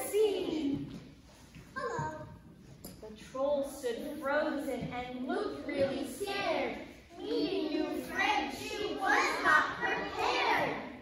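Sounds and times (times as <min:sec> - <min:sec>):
children talking: 0:01.8 - 0:02.4, 0:03.4 - 0:11.0.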